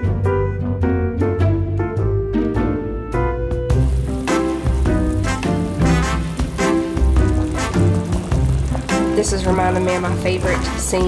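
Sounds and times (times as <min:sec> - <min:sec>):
background music with plucked notes: 0:00.0 - 0:11.0
pot of eggs boiling: 0:03.8 - 0:11.0.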